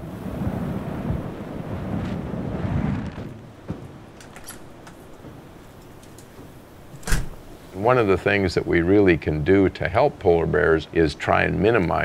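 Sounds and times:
wind buffeting microphone: 0.0s - 9.2s
strong wind gusting: 0.0s - 10.5s.

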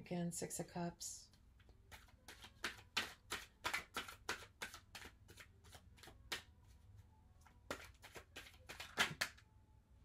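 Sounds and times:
cards being shuffled: 1.8s - 6.5s, 7.4s - 9.4s.

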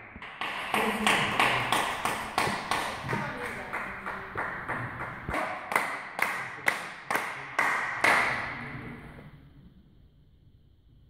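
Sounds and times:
table tennis ball bouncing on table: 0.2s - 6.4s.

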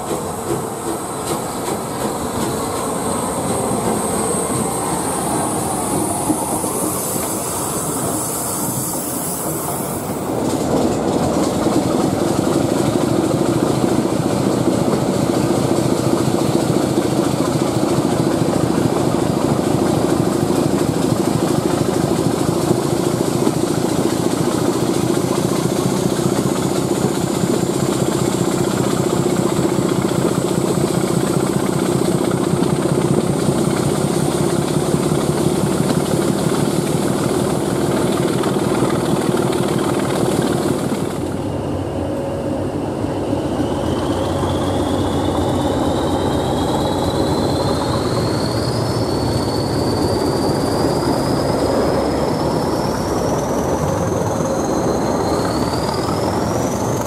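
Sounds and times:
train engine drone: 0.0s - 57.0s
wheels rumbling on rails: 0.0s - 57.0s.

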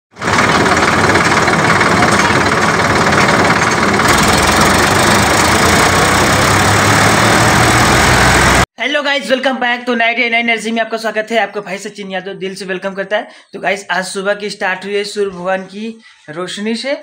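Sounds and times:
tractor diesel engine running: 0.2s - 8.7s.

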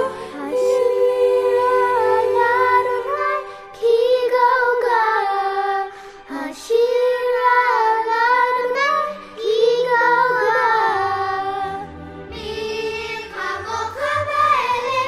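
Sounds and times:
children singing: 0.0s - 15.0s.

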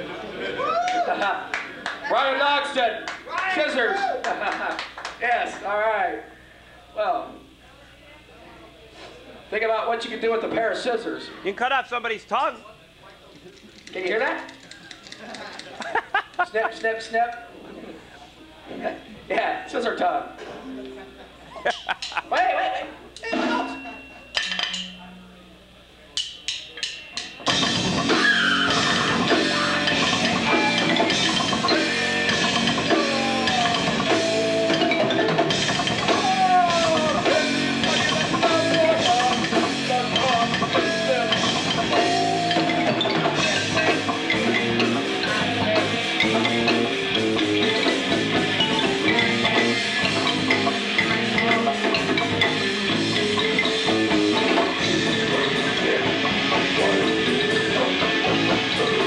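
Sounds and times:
progressive metal band playing: 27.4s - 59.0s.

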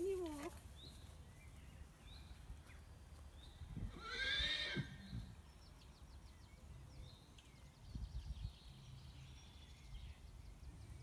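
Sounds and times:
horse whinnying: 3.9s - 5.1s.

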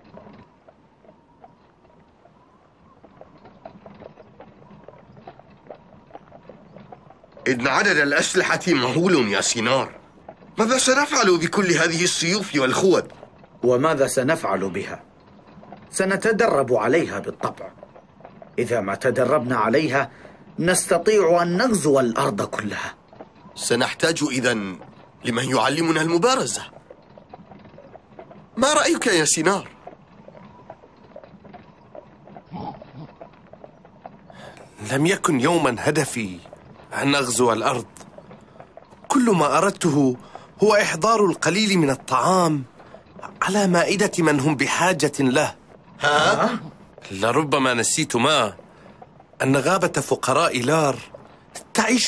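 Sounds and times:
faint scattered clicks: 0.0s - 52.0s
horse hooves clip-clopping: 0.0s - 52.0s
low pitched grunt: 32.5s - 33.1s, 46.0s - 46.8s.

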